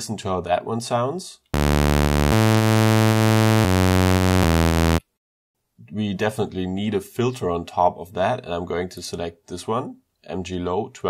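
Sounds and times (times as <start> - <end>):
buzzy sawtooth synth bass: 1.6 - 5.0.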